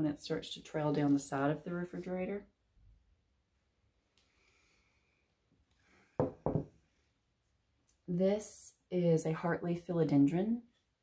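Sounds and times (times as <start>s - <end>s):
plant pot knocking on hard surface: 6.2s - 6.8s.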